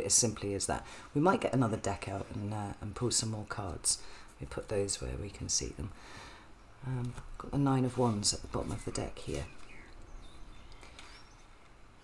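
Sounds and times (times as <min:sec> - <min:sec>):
faint high bird chirps: 0:08.7 - 0:11.8.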